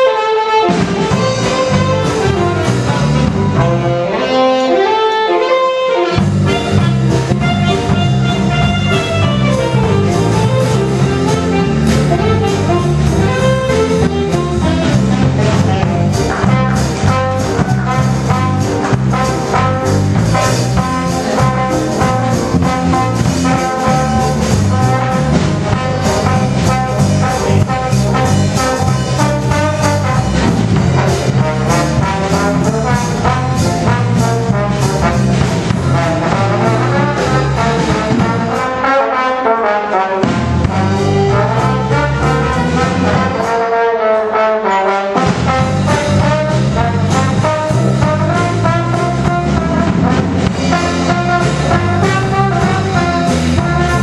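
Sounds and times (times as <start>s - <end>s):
brass horns: 0.0s - 54.0s
drums: 0.0s - 54.0s
piano: 0.0s - 54.0s.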